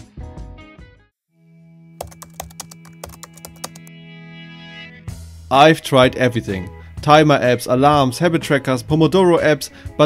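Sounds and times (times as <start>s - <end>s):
keyboard key clicks: 2.0s - 3.9s.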